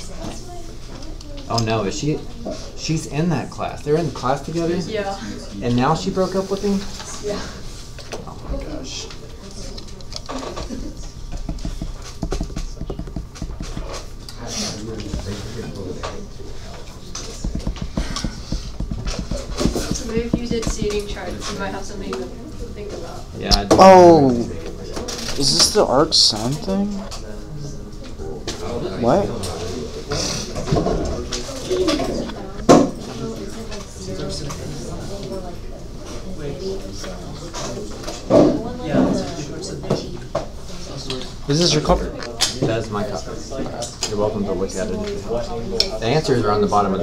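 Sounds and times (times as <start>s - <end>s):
murmuring voices: 6.2s - 46.0s
rapid small taps: 11.3s - 14.0s, 17.2s - 21.2s.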